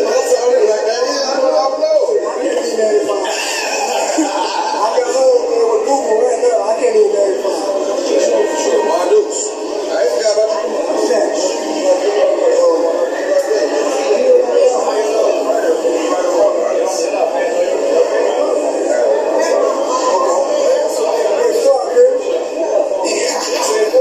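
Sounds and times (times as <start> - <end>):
voices from video: 0.0 - 24.0.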